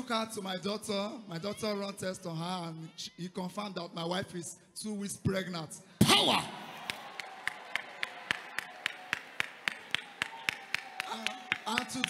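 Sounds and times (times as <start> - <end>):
hands clapping in rhythm: 6.8 - 12.0.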